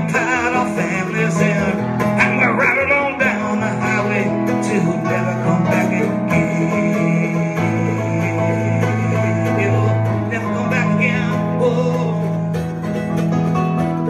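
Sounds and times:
plucked string instrument strummed: 0:00.0 - 0:14.0
stage piano chords: 0:00.0 - 0:14.0.

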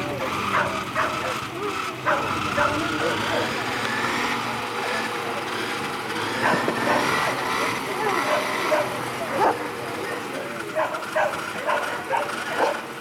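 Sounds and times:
murmur of voices: 0:00.0 - 0:13.0
dogs barking and yelping: 0:00.2 - 0:04.2, 0:06.3 - 0:13.0.

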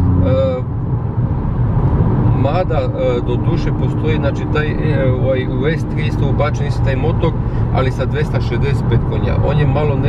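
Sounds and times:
car engine hum: 0:00.0 - 0:10.0
tyre road rumble: 0:00.0 - 0:10.0.

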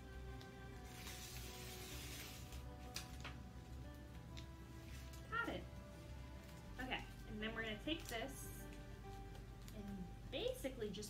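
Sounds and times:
soft background music: 0:00.0 - 0:11.0
paper backing peeling: 0:00.8 - 0:05.3.

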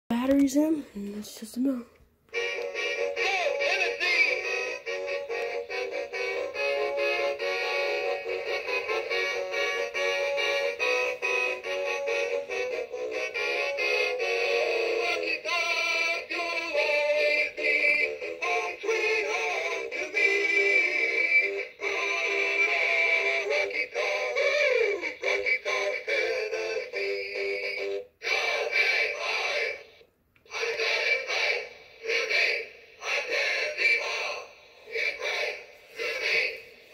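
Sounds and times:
tinny song from small speaker: 0:02.3 - 0:36.9.

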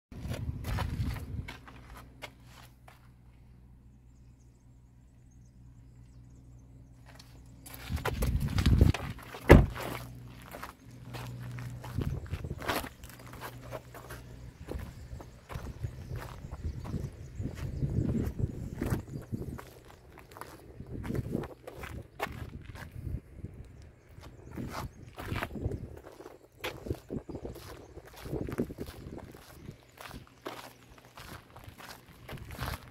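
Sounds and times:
footsteps on gravel: 0:00.2 - 0:03.1, 0:07.0 - 0:23.1, 0:24.2 - 0:32.9
car door shutting: 0:09.3 - 0:10.0.

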